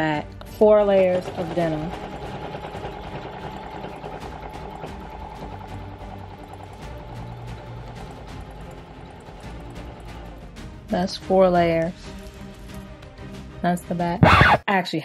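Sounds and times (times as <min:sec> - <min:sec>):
sewing machine stitching: 0:00.0 - 0:12.9
background music: 0:00.0 - 0:15.0.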